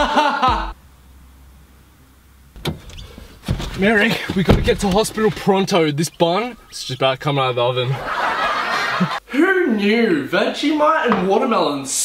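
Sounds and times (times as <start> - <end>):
low hum: 0.0 - 9.2
car door clunk: 2.5 - 6.6.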